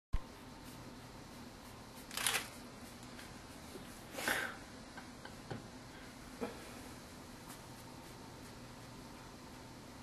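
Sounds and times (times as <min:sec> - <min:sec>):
faint room noise: 0:00.2 - 0:10.0.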